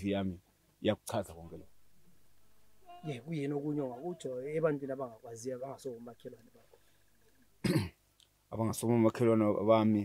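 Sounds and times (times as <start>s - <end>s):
person coughing: 7.6s - 8.0s.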